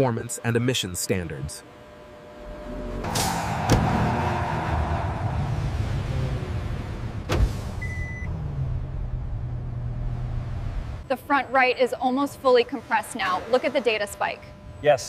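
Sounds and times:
car engine drone: 0.0s - 15.0s
rushing noise: 2.4s - 7.9s.

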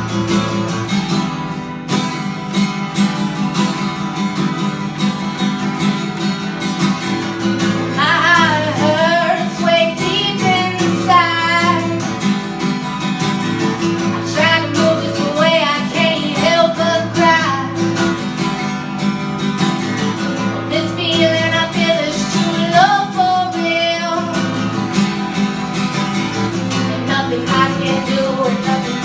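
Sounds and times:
acoustic guitar: 0.0s - 29.0s
woman singing: 7.9s - 12.3s, 14.1s - 18.1s, 20.6s - 24.8s, 26.7s - 29.0s.

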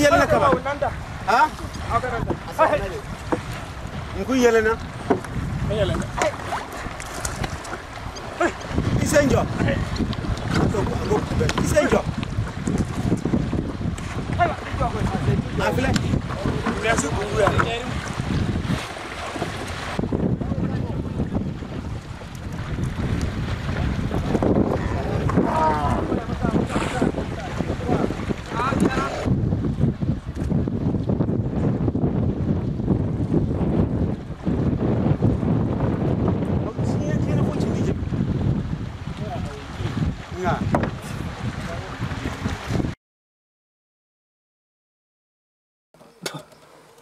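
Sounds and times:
water sloshing and splashing: 0.0s - 31.3s, 37.7s - 43.0s
wind noise on microphone: 0.0s - 43.0s.

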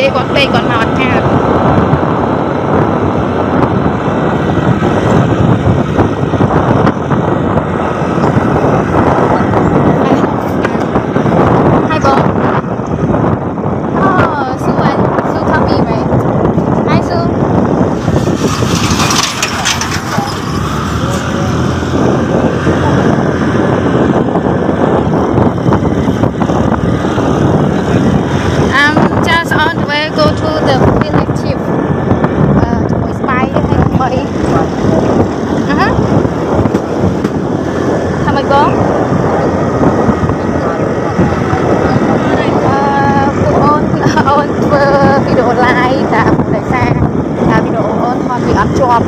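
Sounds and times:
motorbike engine: 0.0s - 49.0s
wind on microphone: 0.0s - 49.0s.

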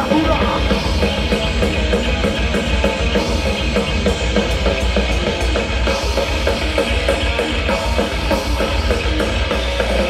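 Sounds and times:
distorted electric guitar riffing: 0.0s - 10.0s
driving drum beat: 0.0s - 10.0s.

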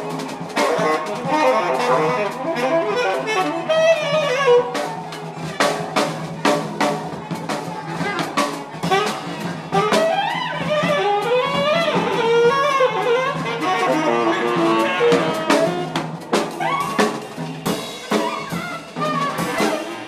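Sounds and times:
drum and cymbal hits: 0.0s - 20.0s
drum kit: 0.0s - 20.0s
saxophone improvising: 0.6s - 4.8s, 10.1s - 16.0s.

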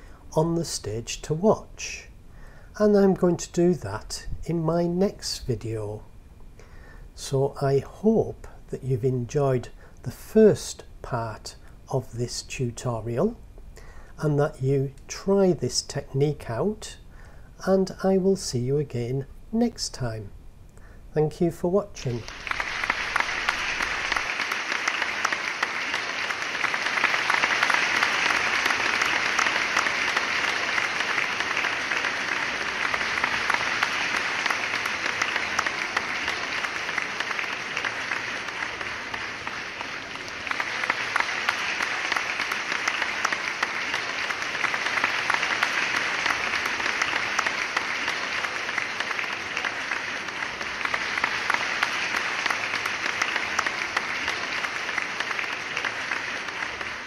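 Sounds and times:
crowd applauding: 22.0s - 57.0s.

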